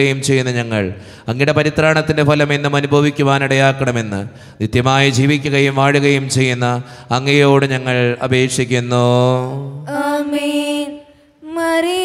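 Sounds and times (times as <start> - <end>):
man chanting a prayer: 4.7 - 9.6.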